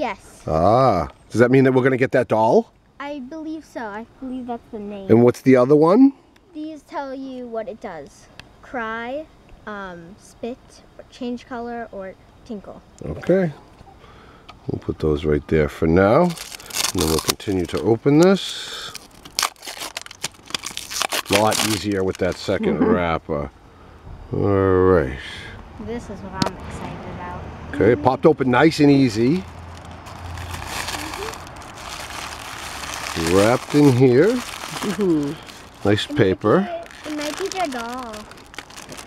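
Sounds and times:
plastic wrapper crinkling and tearing: 16.2s - 22.6s, 29.0s - 39.0s
soft drawn-out voice: 26.9s - 28.6s, 34.9s - 38.3s.

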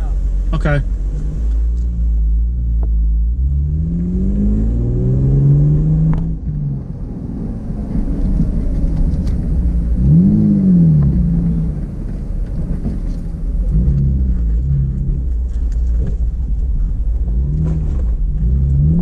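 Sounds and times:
car engine accelerating: 0.0s - 19.0s
low road rumble: 0.0s - 19.0s.

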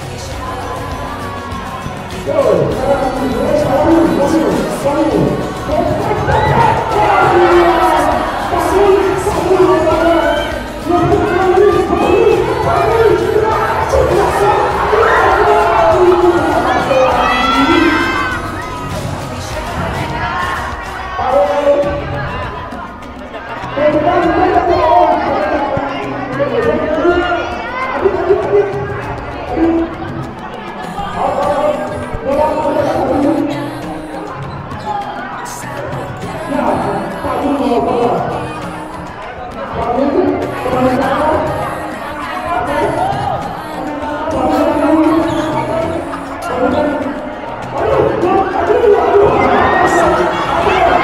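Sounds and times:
background music: 0.0s - 51.0s
children shouting and cheering: 0.0s - 51.0s
voices: 0.0s - 51.0s.

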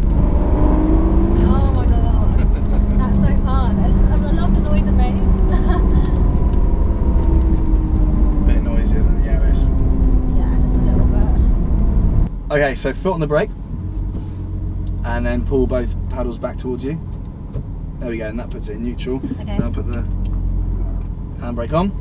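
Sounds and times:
car engine at low revs: 0.0s - 22.0s
low road rumble: 0.0s - 22.0s.

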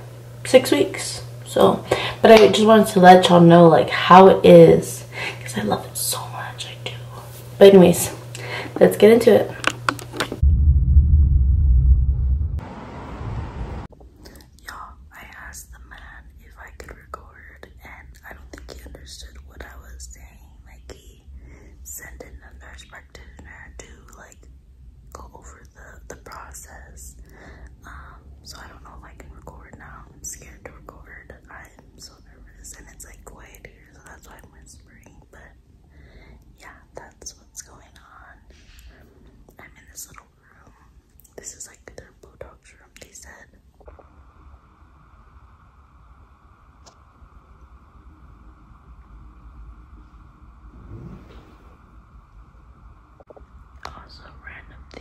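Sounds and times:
low steady hum: 0.0s - 55.0s
woman whispering: 0.5s - 8.1s, 14.3s - 24.5s, 25.1s - 35.6s, 36.5s - 38.5s, 39.5s - 43.6s, 53.8s - 55.0s.

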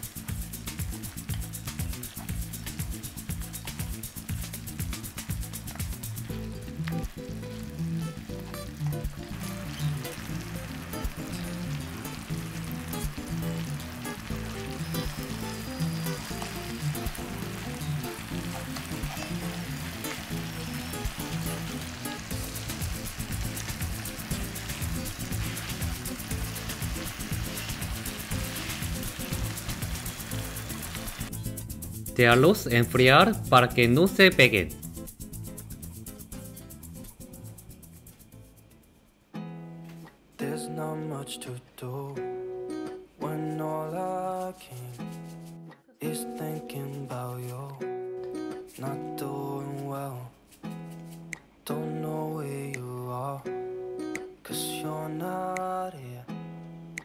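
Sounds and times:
syrup and oil sizzling in a pan: 0.0s - 37.0s
background music with steady beat: 0.0s - 41.3s.

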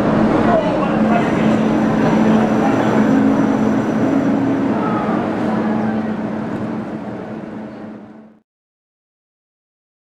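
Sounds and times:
metro train hum and rush: 0.0s - 8.4s.

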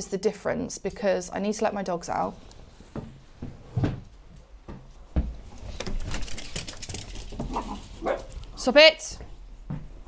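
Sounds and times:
dog paws pattering and clicking: 4.8s - 9.8s.

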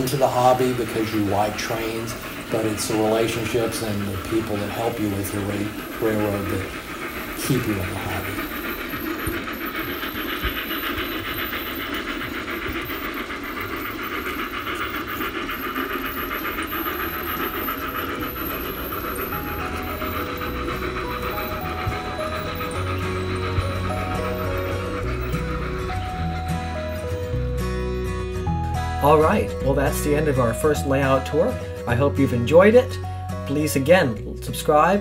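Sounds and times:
music: 0.0s - 13.0s, 16.0s - 35.0s
model train wheels clattering: 0.0s - 28.4s.

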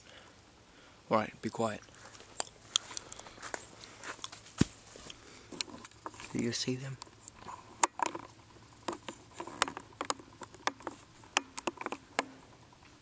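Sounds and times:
footsteps crunching on twigs: 1.8s - 6.5s.

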